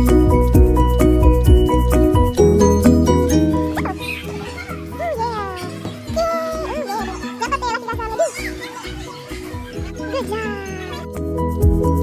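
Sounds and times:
music with steady beat: 0.0 - 5.0, 11.0 - 12.0
high gliding voice sounds: 3.9 - 8.6.

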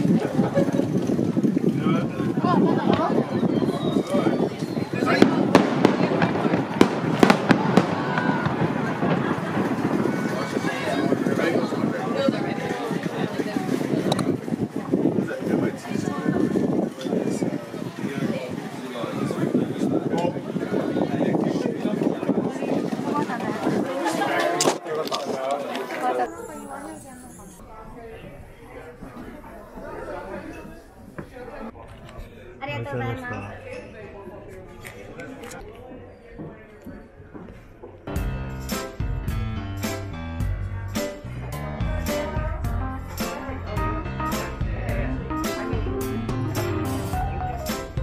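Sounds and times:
background chatter of voices: 0.0 - 38.1, 40.1 - 48.0
people talking close by: 0.0 - 48.0
fireworks bangs: 4.5 - 12.0.

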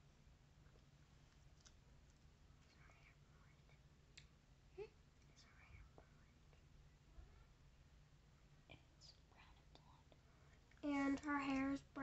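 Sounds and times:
low room noise: 0.0 - 12.0
faint whispering: 2.6 - 3.9, 4.7 - 7.6, 8.6 - 12.0
girl speaking: 10.8 - 12.0.

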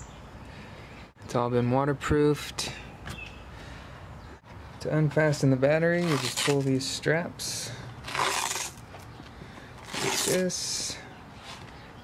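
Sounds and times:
velcro strap ripping open: 6.0 - 6.7, 8.0 - 8.8, 9.8 - 10.5.

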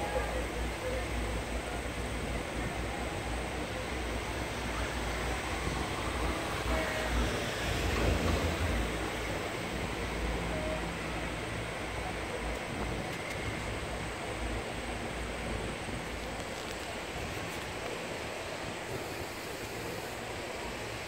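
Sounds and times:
rushing noise with low rumble: 0.0 - 21.0.

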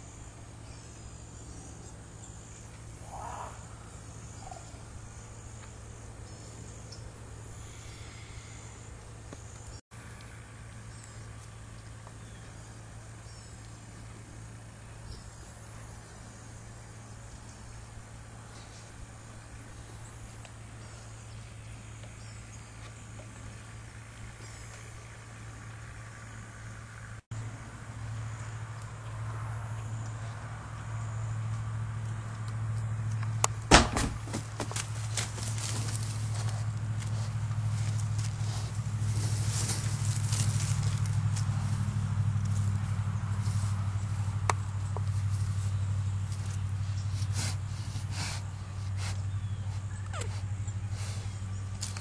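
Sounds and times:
crickets chirring: 0.0 - 9.8, 34.2 - 47.8
low steady hum: 0.0 - 52.0.

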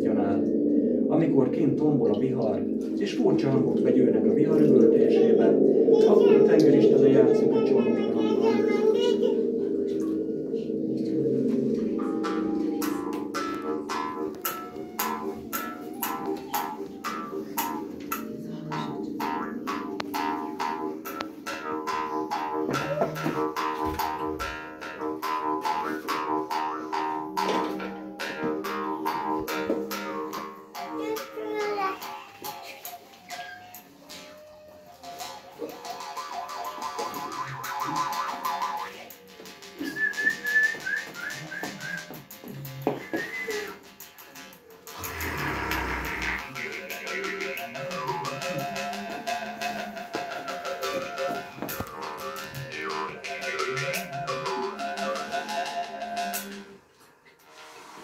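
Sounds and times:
jaw harp twangs: 44.9 - 48.4.

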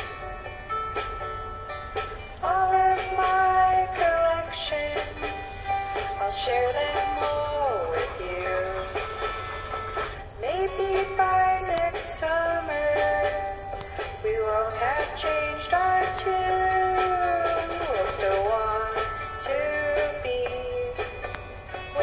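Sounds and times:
high voice singing long notes: 2.4 - 9.8, 10.4 - 21.3.

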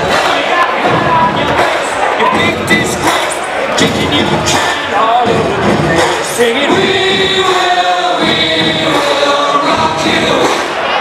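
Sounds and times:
music: 0.0 - 11.0
people singing sustained notes: 6.1 - 11.0.

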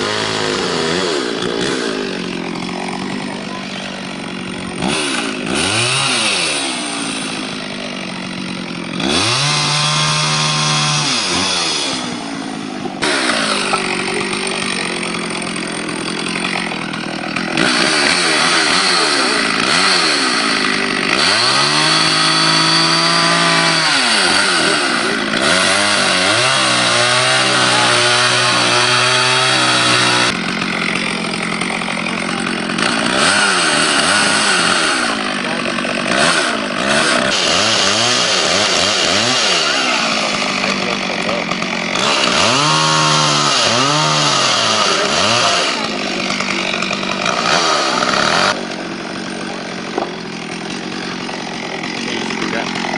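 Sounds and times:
chainsaw revving cutting wood: 0.0 - 52.9.

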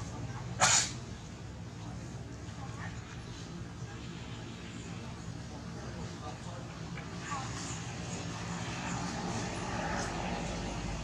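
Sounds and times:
engine drone: 0.0 - 11.0
faint voices: 0.0 - 11.0.

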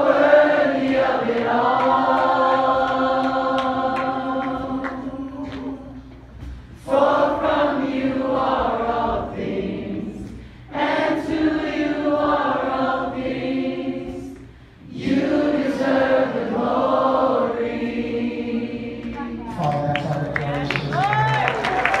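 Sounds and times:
group of singers singing: 0.0 - 19.6
singers breathing: 10.2 - 10.7, 14.4 - 14.9.

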